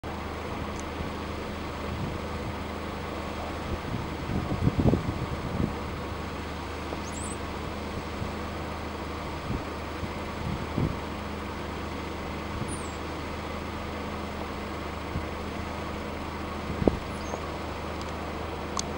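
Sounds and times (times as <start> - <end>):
low background rumble: 0.0 - 18.9
birds whistling: 7.0 - 7.4, 12.7 - 13.0, 17.1 - 17.5.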